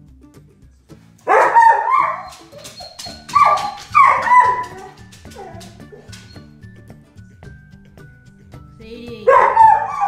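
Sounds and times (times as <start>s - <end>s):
soft guitar music: 1.0s - 10.0s
dog howling: 1.3s - 6.4s, 9.3s - 10.0s.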